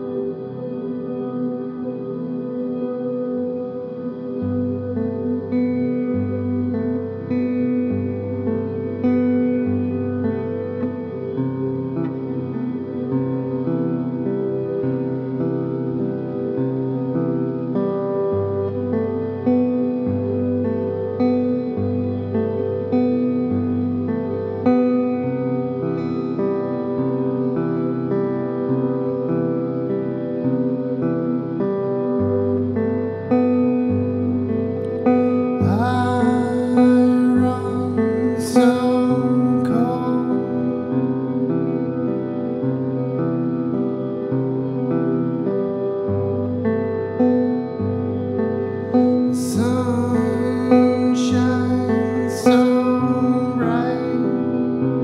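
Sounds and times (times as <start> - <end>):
acoustic guitar chords: 0.0 - 55.0.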